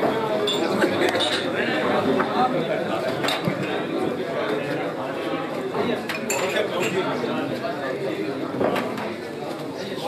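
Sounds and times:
teacups and dishes clinking: 0.0s - 2.3s, 5.8s - 7.1s.

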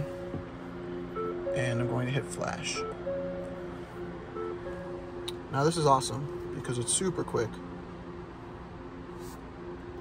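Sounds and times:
faint pitched drone: 0.0s - 10.0s
low machine hum: 0.0s - 10.0s.

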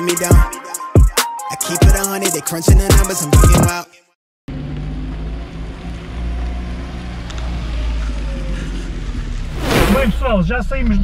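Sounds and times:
car engine and road noise: 4.5s - 11.0s
whoosh transition effect: 9.4s - 10.4s.

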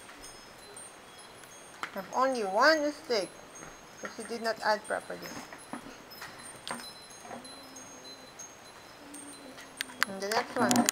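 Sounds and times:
high tinkling tones: 0.0s - 10.9s.

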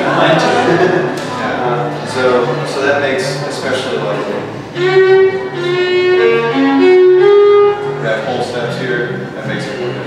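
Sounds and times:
solo fiddle melody: 4.6s - 8.8s.

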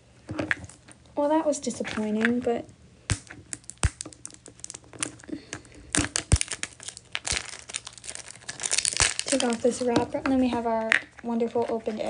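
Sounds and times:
plastic wrapper crinkling and tearing: 3.1s - 12.0s.

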